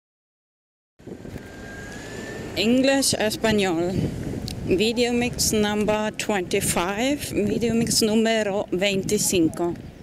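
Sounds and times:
faint high whine: 1.0 - 3.2.

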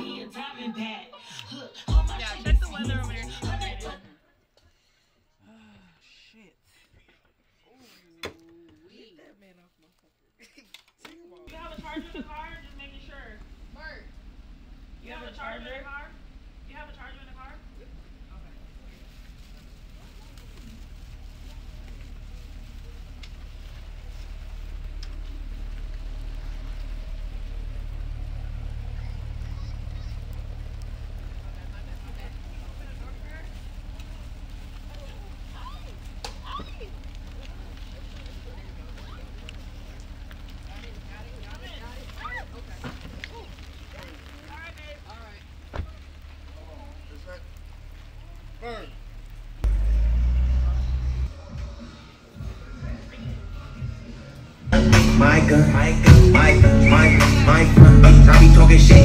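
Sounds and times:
car engine idling: 1.8 - 4.0, 11.5 - 59.0.

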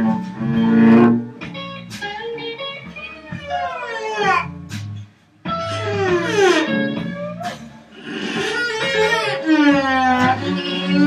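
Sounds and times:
bowed cello: 0.0 - 2.0, 3.0 - 11.0
blues electric guitar: 0.0 - 11.0.

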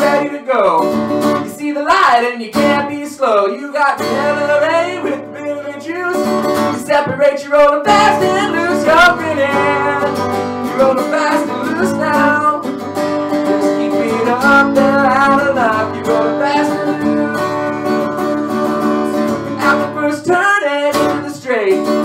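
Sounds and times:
acoustic guitar strummed: 0.0 - 22.0
man singing: 0.0 - 22.0.

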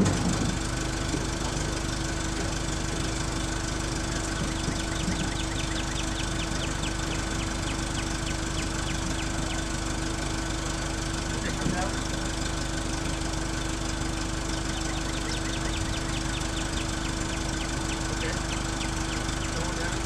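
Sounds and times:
engine idling: 0.0 - 20.0.

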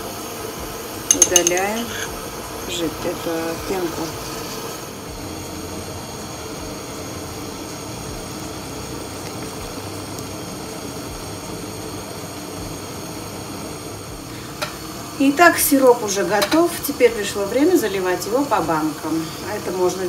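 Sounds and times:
syrup boiling in pot: 0.0 - 20.0.

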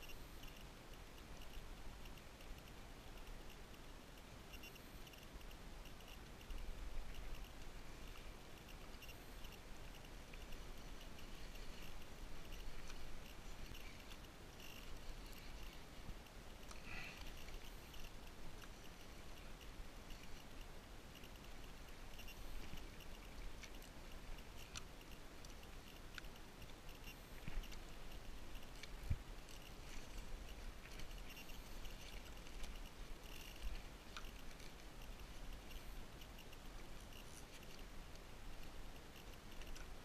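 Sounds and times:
small clicks and ticks: 0.0 - 40.0.

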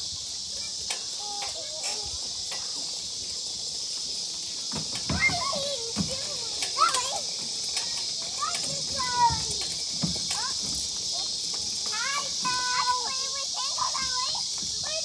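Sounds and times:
children calling out and chattering: 0.0 - 15.0
insects droning: 0.0 - 15.0.

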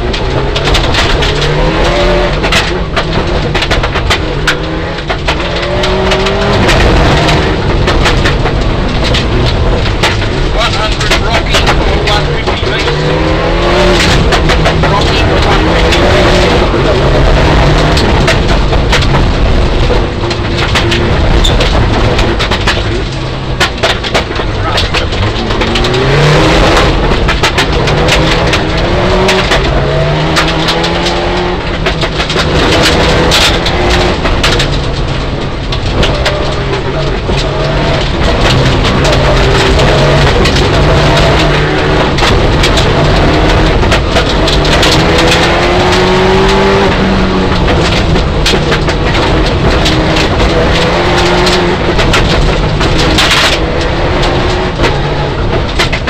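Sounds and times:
car engine accelerating and shifting gears: 0.0 - 56.0
stones clattering against car: 0.0 - 56.0.

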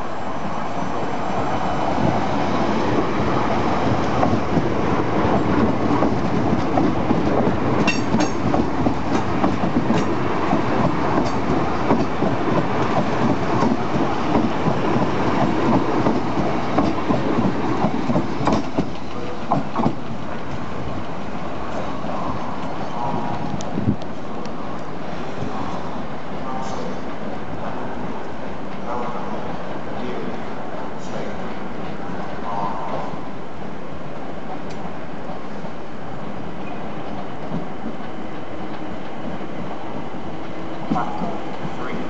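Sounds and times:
train wheels clattering: 3.5 - 24.1.

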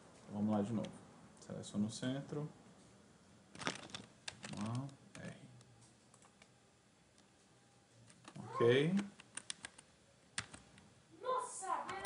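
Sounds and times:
computer keyboard keystrokes: 3.6 - 5.3, 6.1 - 6.5, 8.1 - 10.8.

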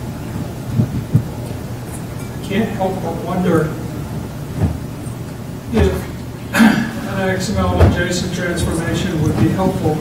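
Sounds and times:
low rumbling room noise: 0.0 - 10.0
dull low thumps: 0.4 - 1.4.

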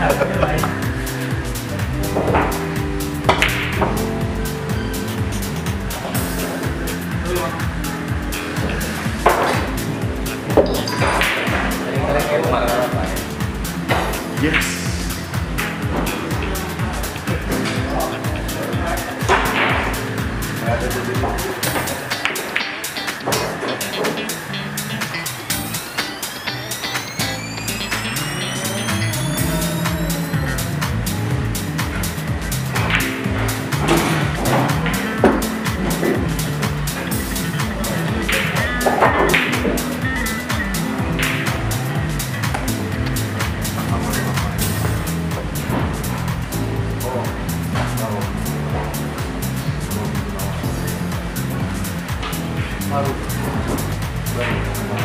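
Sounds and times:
music with a steady beat: 0.0 - 55.0
voices: 8.6 - 15.3, 16.0 - 31.1, 31.9 - 45.1
rising tones sweeping upward: 23.5 - 45.5.

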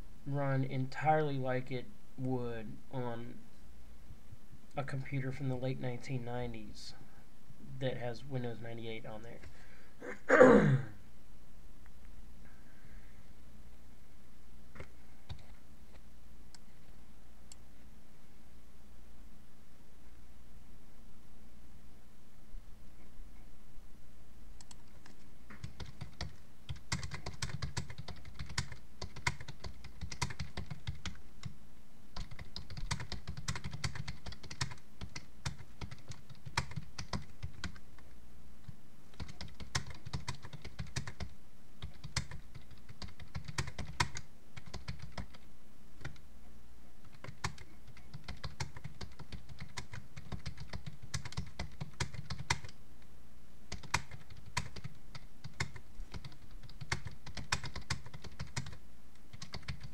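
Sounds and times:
keyboard typing: 24.6 - 31.5, 32.2 - 37.8, 39.1 - 45.4, 47.0 - 52.8, 53.7 - 59.9.

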